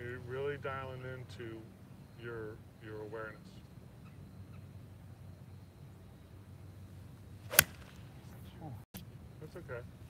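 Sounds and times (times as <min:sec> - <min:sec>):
golf club striking ball: 0:07.5 - 0:08.0.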